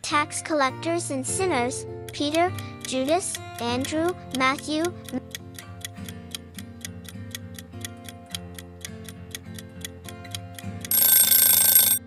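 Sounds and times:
soft background music: 0.0s - 11.6s
clock ticking rapidly: 1.4s - 12.0s
loud ringing alarm: 10.9s - 12.0s.

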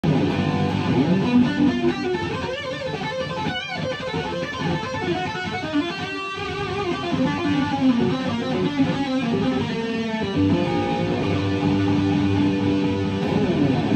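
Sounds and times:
electric guitar fast lead: 0.0s - 13.9s.

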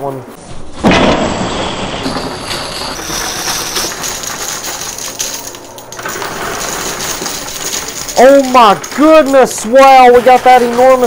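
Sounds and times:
chips and coins clattering: 2.0s - 11.0s.

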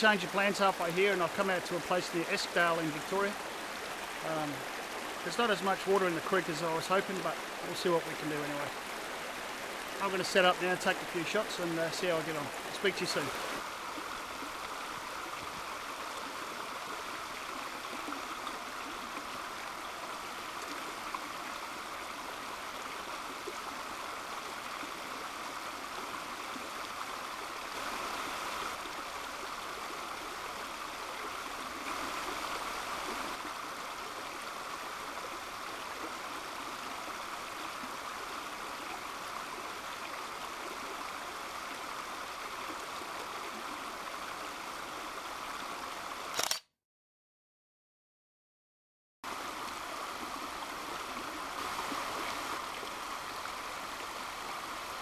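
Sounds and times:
creek flowing over rocks: 0.0s - 46.3s, 49.2s - 55.0s.

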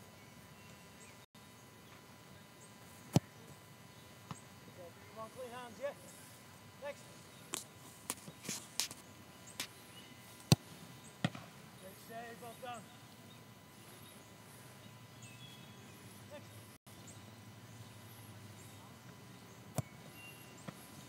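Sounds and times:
low outdoor background: 0.0s - 21.0s
soccer ball kicked thuds: 3.1s - 3.3s, 10.4s - 11.5s.

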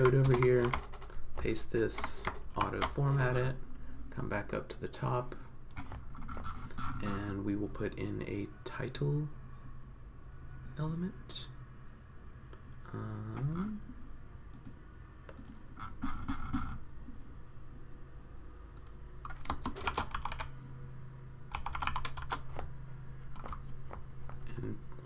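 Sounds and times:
typing on computer keyboard: 0.0s - 3.2s, 18.8s - 20.6s, 21.5s - 22.7s, 23.3s - 24.5s.

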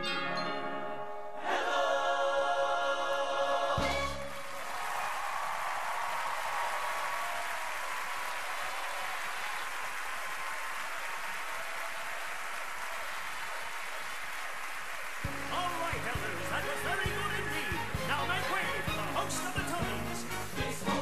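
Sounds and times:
audience cheering: 3.8s - 18.7s
audience applauding: 4.1s - 18.9s
singing: 16.7s - 21.0s.

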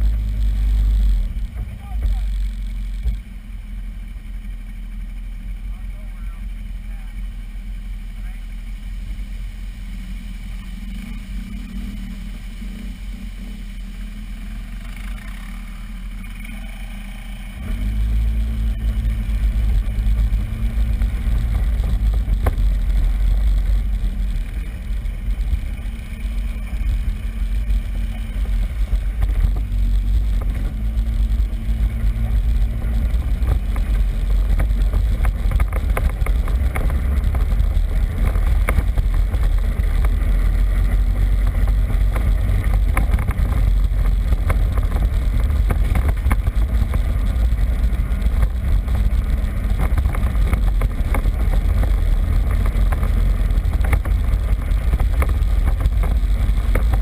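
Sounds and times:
quad bike engine: 0.0s - 57.0s.

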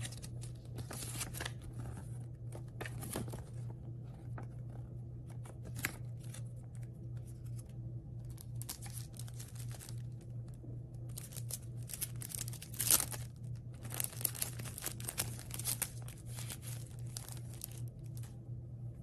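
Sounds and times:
paper and packaging rustling: 0.0s - 18.4s
low steady hum: 0.0s - 19.0s.

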